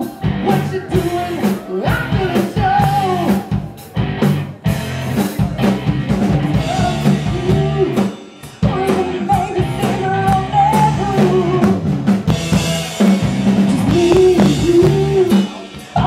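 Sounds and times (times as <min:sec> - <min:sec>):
man singing: 0:00.0 - 0:03.8, 0:06.2 - 0:11.8, 0:13.7 - 0:16.0
bass guitar: 0:00.0 - 0:16.0
drum kit strokes: 0:00.0 - 0:16.0
electric guitar: 0:00.0 - 0:16.0
woman singing: 0:13.9 - 0:16.0.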